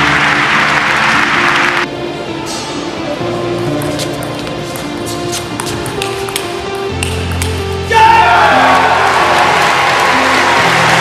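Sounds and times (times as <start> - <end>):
crowd cheering and applause: 0.0 - 1.9, 8.0 - 11.0
background music: 0.0 - 11.0
table tennis ball clicking: 7.0 - 7.6.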